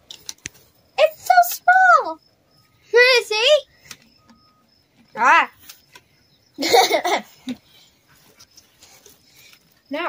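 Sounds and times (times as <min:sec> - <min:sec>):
faint insect chirping: 0:00.0 - 0:10.0.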